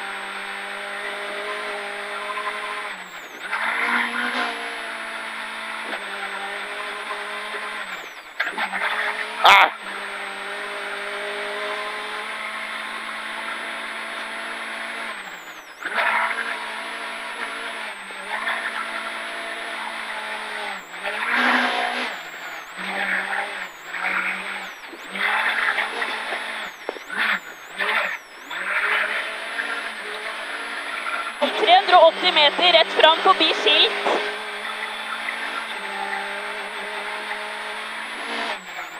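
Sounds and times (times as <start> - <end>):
car engine at high revs: 0.0 - 38.9
tyres on gravel: 15.2 - 38.9.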